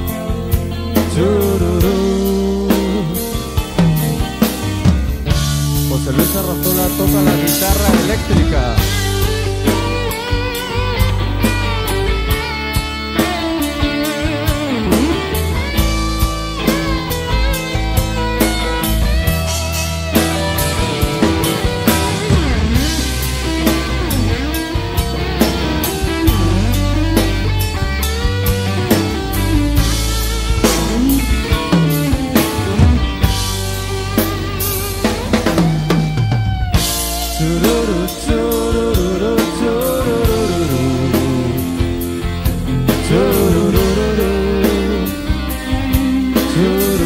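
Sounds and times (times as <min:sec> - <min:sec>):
bass guitar: 0:00.0 - 0:47.0
drum kit: 0:00.0 - 0:47.0
guitar lead line bending notes: 0:00.0 - 0:47.0.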